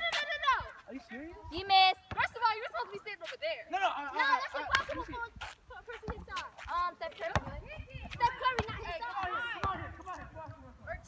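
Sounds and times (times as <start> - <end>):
voices talking and calling out: 0.0 - 11.0.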